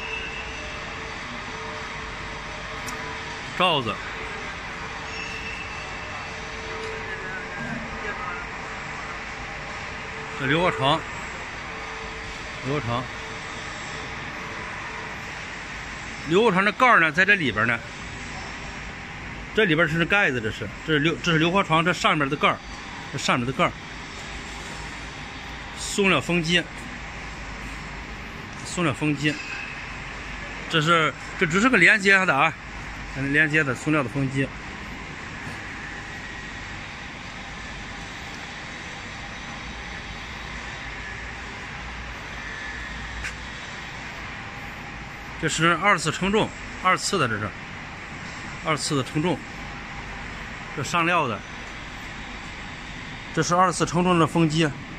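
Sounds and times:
machinery whirring hiss: 0.0s - 54.9s.

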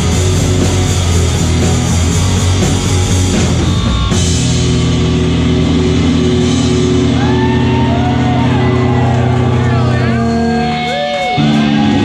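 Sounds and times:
live rock band playing loud: 0.0s - 12.0s.

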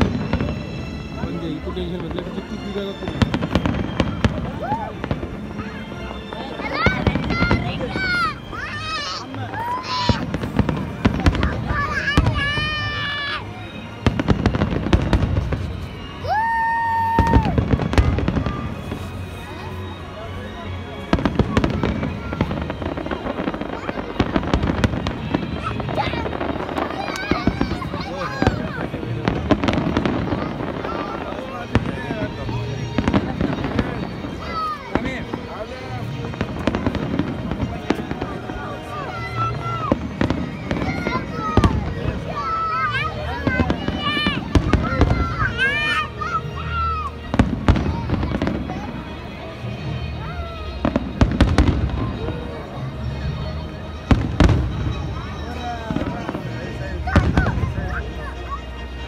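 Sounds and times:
fireworks bangs and crackling: 0.0s - 59.0s
spectators' voices: 0.0s - 59.0s.

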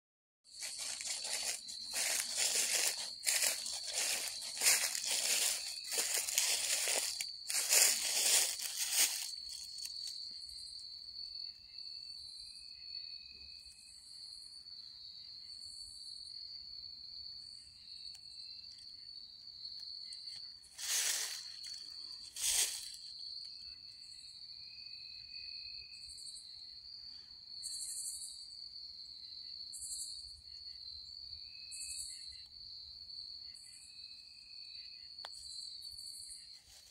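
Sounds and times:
footsteps crunching dry leaves: 0.5s - 10.1s, 20.7s - 23.1s.

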